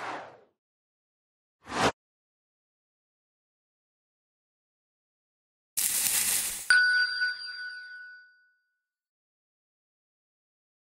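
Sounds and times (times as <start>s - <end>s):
bright bell-like ding: 6.7s - 8.7s.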